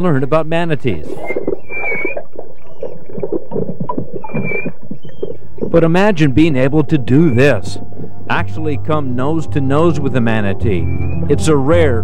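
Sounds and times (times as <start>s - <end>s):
underwater gurgling and bubbles: 0.8s - 5.8s
manatee squeaking chirps: 0.8s - 8.3s, 9.7s - 12.0s.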